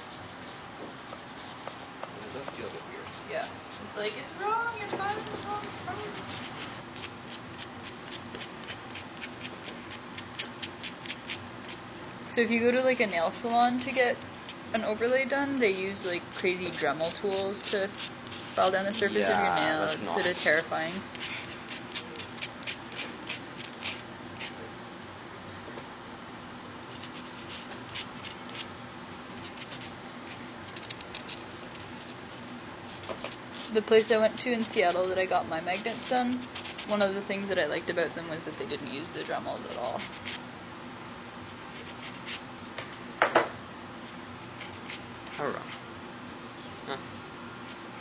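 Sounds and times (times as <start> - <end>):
nail buffer rasping on fingernail: 4.8 - 11.8, 12.8 - 24.6, 26.9 - 28.7, 29.3 - 37.2.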